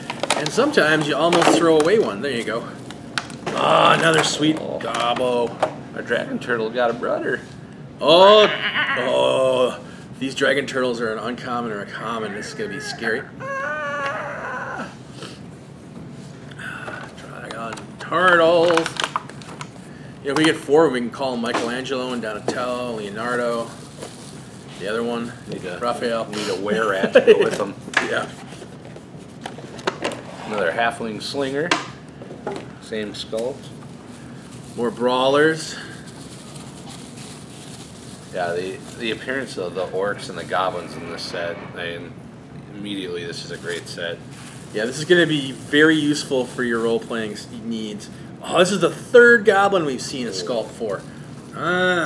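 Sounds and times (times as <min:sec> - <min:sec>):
room noise: 0:00.0 - 0:52.0
plastic bags crinkling: 0:34.2 - 0:40.6.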